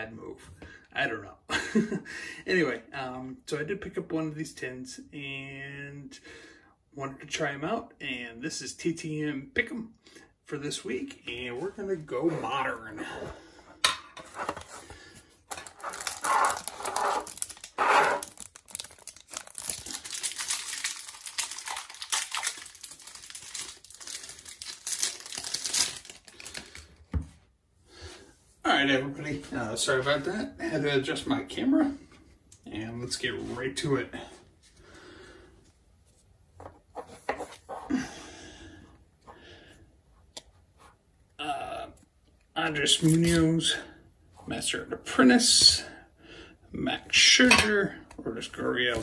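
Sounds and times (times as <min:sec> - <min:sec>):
cards sliding rustles: 0:14.2 - 0:18.7
plastic wrapper crinkling and tearing: 0:15.5 - 0:27.1.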